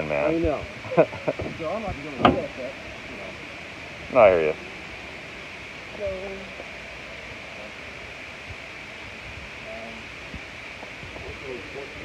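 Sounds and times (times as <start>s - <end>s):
faint distant voices: 0.0s - 12.0s
steady background hiss: 0.0s - 12.0s.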